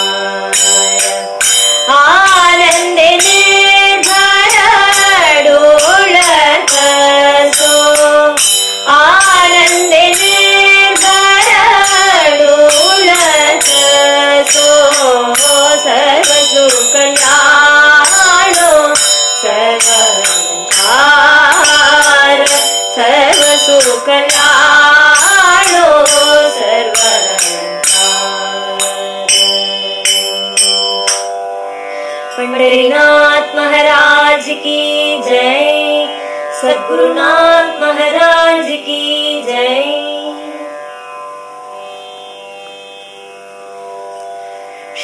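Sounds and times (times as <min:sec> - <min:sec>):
person singing devotional song: 0:00.0 - 0:31.4, 0:32.1 - 0:40.8
instrumental accompaniment: 0:00.0 - 0:45.0.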